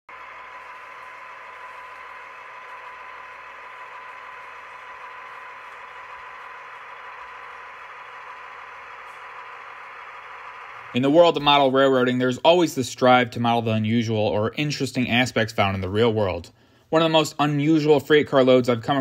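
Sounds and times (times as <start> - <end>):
model train running on track: 0.1 - 12.4
faint motor whine: 0.1 - 17.0.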